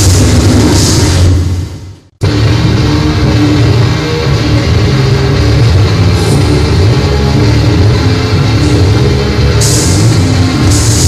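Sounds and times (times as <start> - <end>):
dense loud grindcore music: 0.0 - 11.0.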